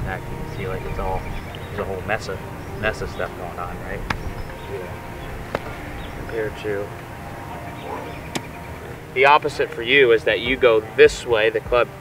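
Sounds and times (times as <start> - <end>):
low outdoor rumble: 0.0 - 10.4.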